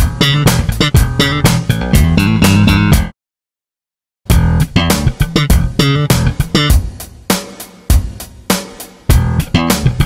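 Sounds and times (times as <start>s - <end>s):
slap bass riff: 0.0s - 3.2s, 4.3s - 7.0s, 9.1s - 10.0s.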